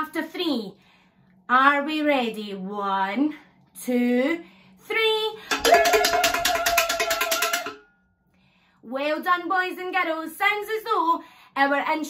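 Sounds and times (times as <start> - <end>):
wooden spoon drumming on saucepan: 5.5 - 7.8.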